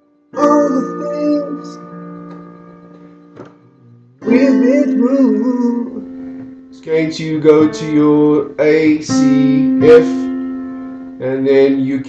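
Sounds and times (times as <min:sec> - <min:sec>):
digital keyboard chord sustaining: 0:00.0 - 0:12.0.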